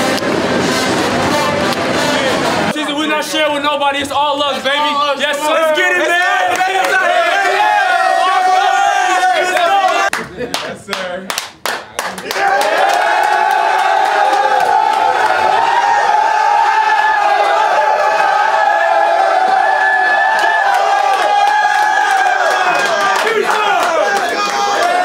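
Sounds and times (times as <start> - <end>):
men yelling and cheering: 1.2 - 10.1, 12.2 - 25.0
sharp claps: 9.9 - 15.4, 20.3 - 25.0.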